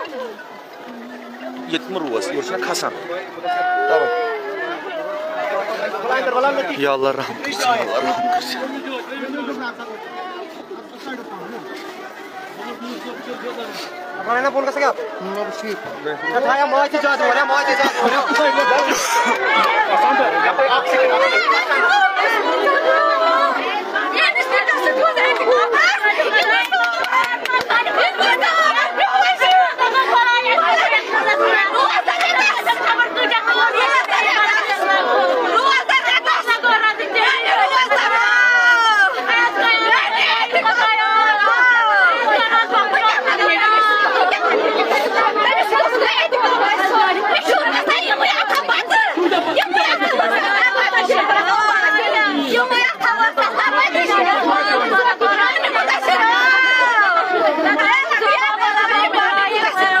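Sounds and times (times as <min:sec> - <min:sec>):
crowd of voices chattering: 0:00.0 - 1:00.0.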